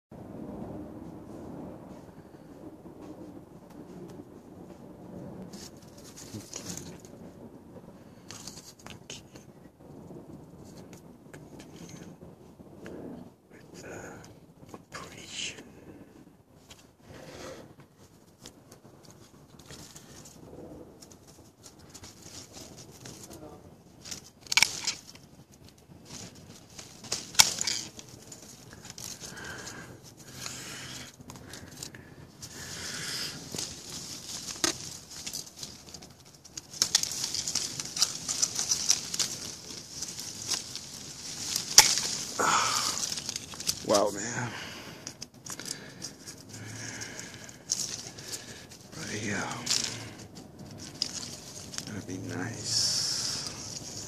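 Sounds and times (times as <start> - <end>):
leaves and branches rustling: 0.4 - 54.0
snips cutting branches: 24.0 - 25.2, 26.1 - 29.3, 32.4 - 44.2.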